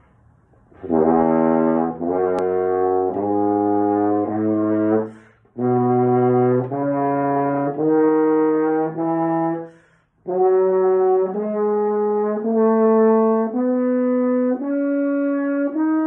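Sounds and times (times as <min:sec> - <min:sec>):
french horn playing a scale: 0:00.7 - 0:16.0.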